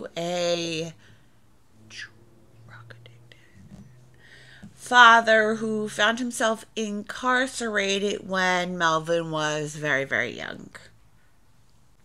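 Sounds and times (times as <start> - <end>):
low steady hum: 0.0 - 12.0
woman inhaling: 1.0 - 1.5, 3.1 - 4.8.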